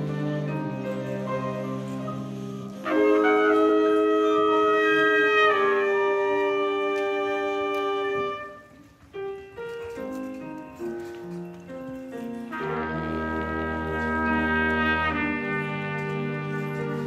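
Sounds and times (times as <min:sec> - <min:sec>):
wind ensemble playing: 0:00.0 - 0:17.0.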